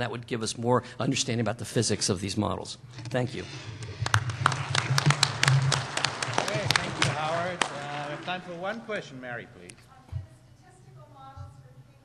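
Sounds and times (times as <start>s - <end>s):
audience clapping: 3.7s - 9.0s.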